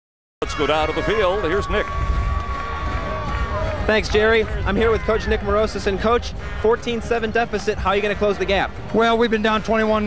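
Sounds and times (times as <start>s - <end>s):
low crowd rumble: 0.4s - 10.0s
man speaking: 3.9s - 10.0s.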